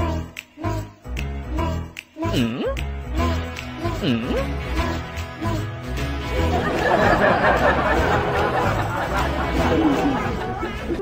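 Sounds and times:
indistinct chatter of voices: 9.1 - 11.0.

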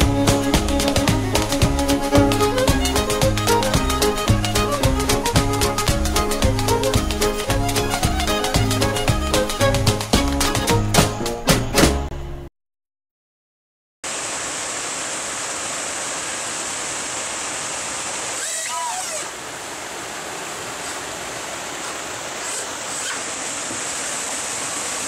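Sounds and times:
water rushing over weir: 0.0 - 11.1, 14.1 - 25.0.

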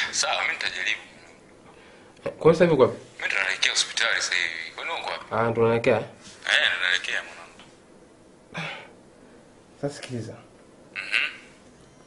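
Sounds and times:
breathy sound: 8.5 - 9.4.

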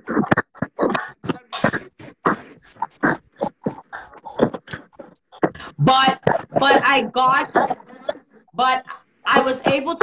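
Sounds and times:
people talking over video call: 0.1 - 10.0.

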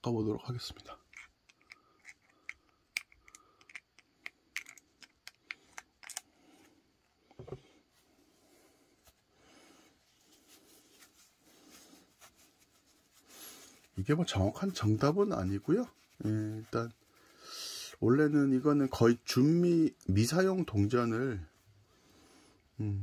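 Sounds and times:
tissue rustling: 8.9 - 17.4.

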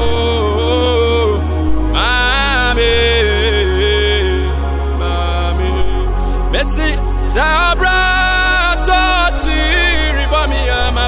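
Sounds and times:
backing music with deep bass: 0.0 - 11.0
man singing: 0.0 - 11.0.

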